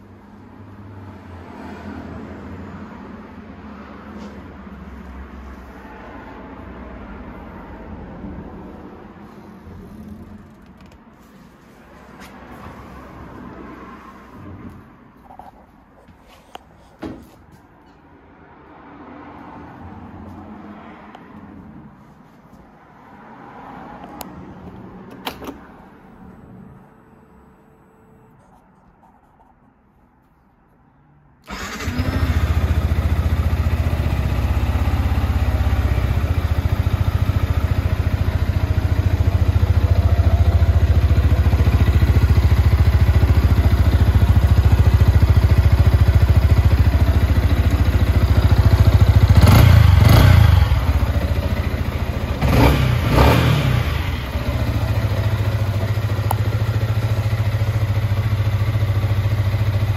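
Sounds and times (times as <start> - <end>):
motorcycle engine idling: 31.5 - 53.1, 53.8 - 59.9
motorcycle engine revving: 31.5 - 59.9.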